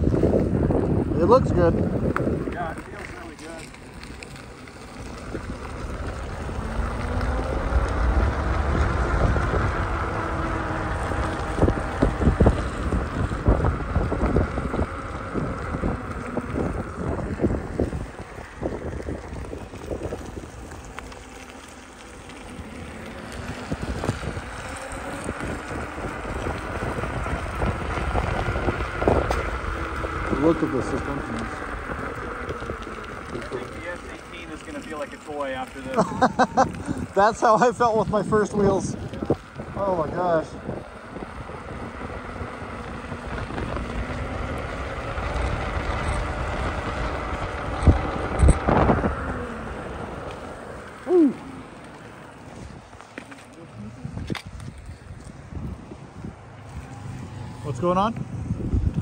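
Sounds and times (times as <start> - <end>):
faint motor whine: 0.0 - 59.0
tyre noise on wet asphalt: 0.0 - 59.0
wind rushing over microphone: 0.0 - 59.0.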